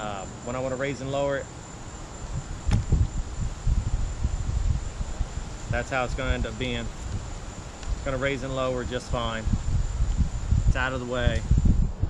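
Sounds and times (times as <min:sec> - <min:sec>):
crickets droning: 0:00.0 - 0:12.0
wind buffeting microphone: 0:01.9 - 0:12.0.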